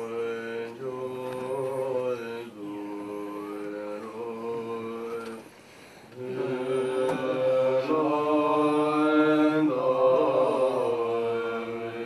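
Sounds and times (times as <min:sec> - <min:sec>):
monks chanting in low voices: 0:00.0 - 0:12.0.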